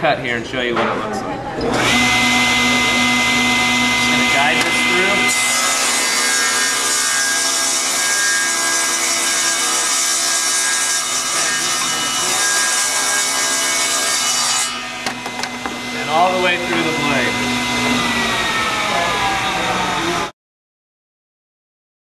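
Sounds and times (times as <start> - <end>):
saw cutting a board: 1.6 - 20.3
table saw motor and blade whine: 1.6 - 20.3.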